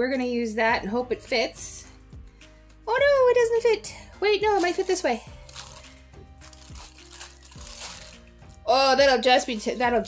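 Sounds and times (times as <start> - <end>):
quiet background music: 0.0 - 10.0
plastic bag crinkling: 4.5 - 8.5.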